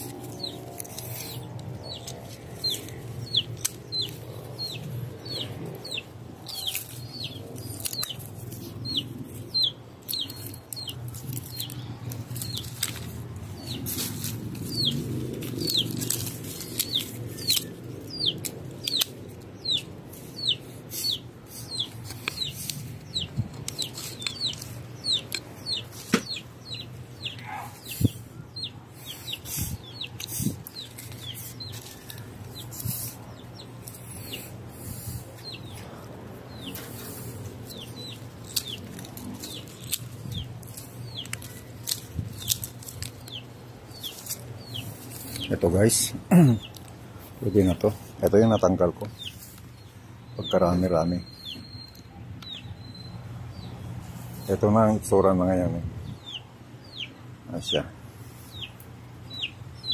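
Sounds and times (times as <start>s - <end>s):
pruning shears snipping: 0.0s - 5.6s, 6.4s - 9.0s, 10.0s - 19.8s, 36.6s - 47.0s.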